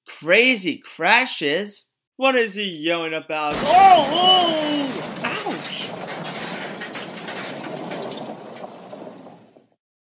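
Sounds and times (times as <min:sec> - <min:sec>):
wooden toy trains clattering: 0:03.5 - 0:09.8.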